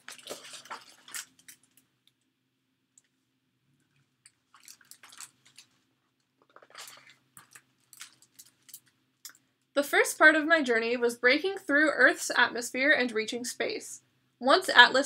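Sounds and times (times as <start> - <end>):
book page rustling: 0.0 - 1.8, 4.4 - 8.9.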